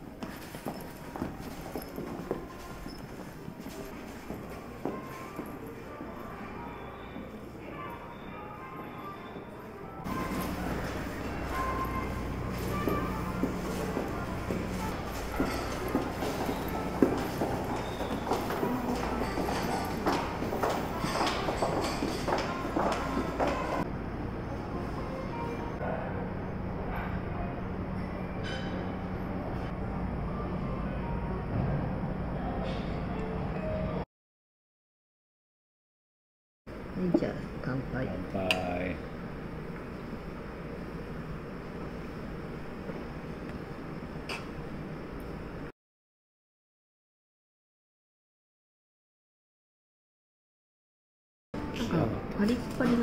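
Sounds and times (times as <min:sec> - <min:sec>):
footsteps on stone floor: 0:00.0 - 0:05.6, 0:12.4 - 0:23.8.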